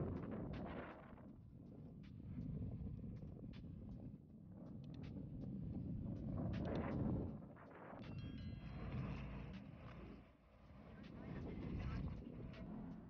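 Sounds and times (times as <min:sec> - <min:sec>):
wind on microphone: 0:00.0 - 0:08.1.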